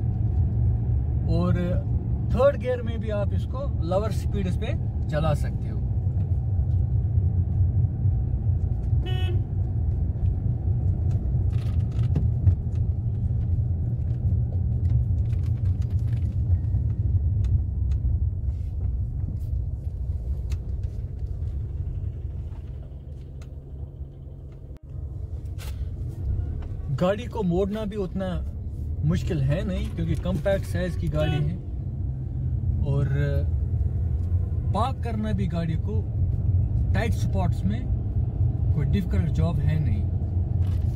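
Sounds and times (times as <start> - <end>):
car engine rumble: 0.0 - 40.9
road noise inside car: 0.0 - 40.9
short car horn toot: 9.0 - 9.5, 31.2 - 31.6.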